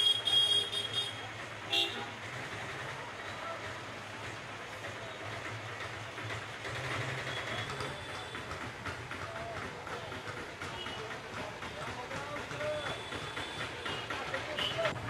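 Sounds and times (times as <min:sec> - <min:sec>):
vehicle horn tooting: 0:00.0 - 0:02.1
engines humming: 0:00.0 - 0:15.0
street noise: 0:00.0 - 0:15.0.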